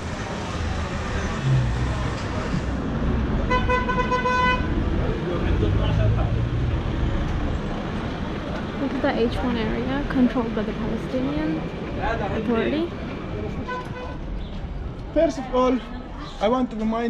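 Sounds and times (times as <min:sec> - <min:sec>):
street traffic hum: 0:00.0 - 0:17.0
vehicle horn: 0:03.4 - 0:04.8, 0:13.6 - 0:14.2.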